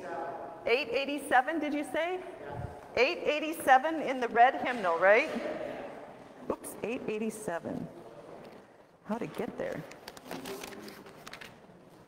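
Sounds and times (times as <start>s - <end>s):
book pages being turned: 9.6s - 12.0s.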